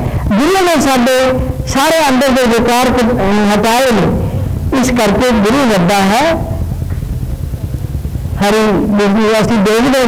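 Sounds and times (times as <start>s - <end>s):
low rumble: 0.0s - 10.0s
woman speaking: 0.3s - 6.6s.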